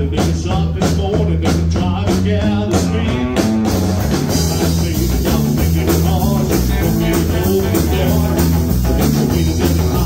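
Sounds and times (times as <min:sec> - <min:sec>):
bass line: 0:00.0 - 0:10.0
drums: 0:00.0 - 0:10.0
electric guitars: 0:00.0 - 0:10.0.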